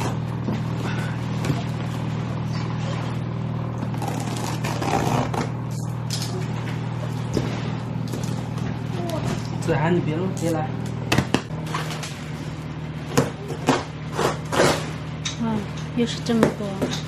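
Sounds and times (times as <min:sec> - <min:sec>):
steady low hum: 0:00.0 - 0:17.0
tape and cardboard crackling: 0:03.8 - 0:06.5.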